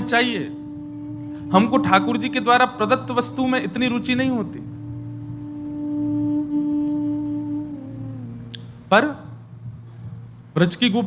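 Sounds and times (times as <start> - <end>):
held musical note: 0.0 - 10.5.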